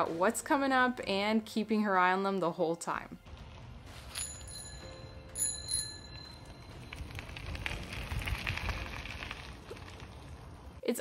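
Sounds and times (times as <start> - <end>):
bicycle rolling on dirt: 3.2 - 4.8, 5.8 - 10.8
bicycle bell ringing: 4.1 - 6.9.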